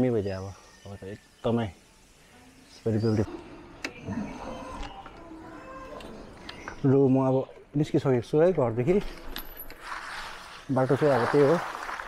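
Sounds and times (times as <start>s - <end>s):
tyres on wet gravel: 9.8s - 12.0s.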